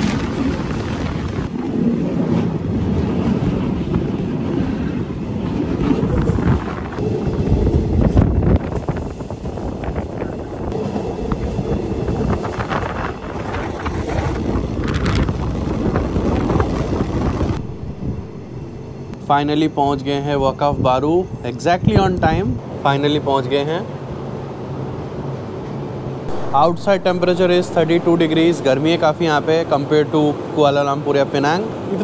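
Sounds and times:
wheels clattering on rails: 0:00.0 - 0:17.6
wind buffeting microphone: 0:00.0 - 0:19.2, 0:20.4 - 0:22.7
train rumbling: 0:00.0 - 0:32.0.

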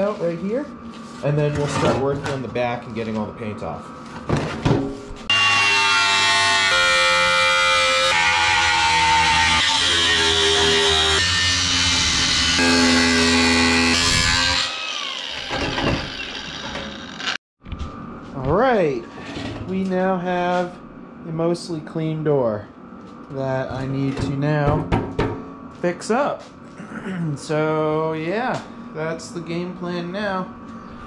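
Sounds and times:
angle grinder cutting sheet steel: 0:05.3 - 0:17.4.

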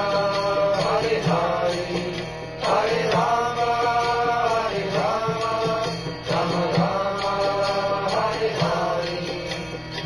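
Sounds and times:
steady instrumental accompaniment: 0:00.0 - 0:10.0.

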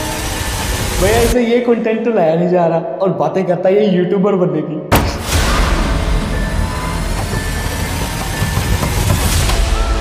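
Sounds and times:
dark horror low rumble: 0:05.2 - 0:10.0.

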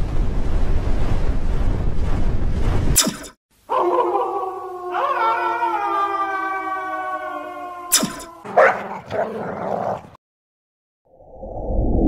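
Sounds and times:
wolf howling: 0:03.7 - 0:10.1.

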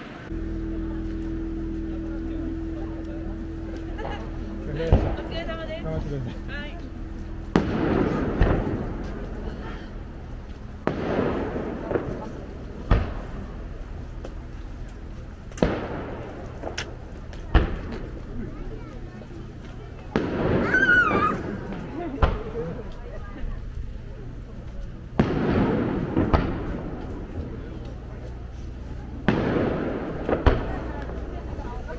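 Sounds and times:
deep fireworks boom: 0:00.0 - 0:31.9
rumbling echo: 0:00.0 - 0:31.9
fireworks bang: 0:03.9 - 0:05.6, 0:07.0 - 0:13.8, 0:15.5 - 0:18.3, 0:20.1 - 0:22.6, 0:25.1 - 0:27.6, 0:29.2 - 0:31.6.

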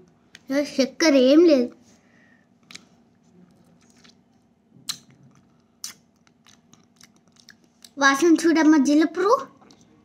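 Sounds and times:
wet mouth clicks of chewing: 0:04.9 - 0:08.0.

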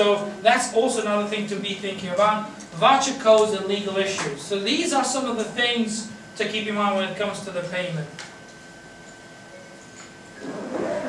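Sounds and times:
faint steady high whine: 0:00.0 - 0:11.0.

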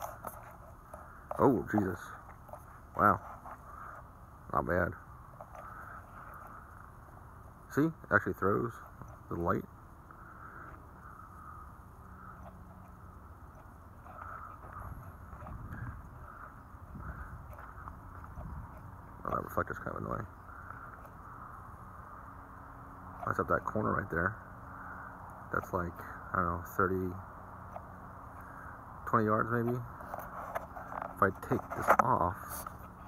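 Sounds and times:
faint low hum: 0:00.0 - 0:33.0.

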